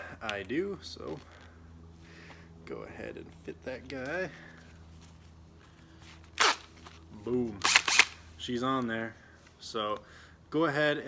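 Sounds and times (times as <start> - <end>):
faint background hum: 0.0 - 11.0.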